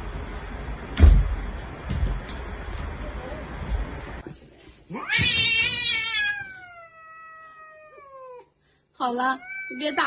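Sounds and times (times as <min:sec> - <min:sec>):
cat yowling: 0:05.0 - 0:08.5, 0:09.2 - 0:10.0.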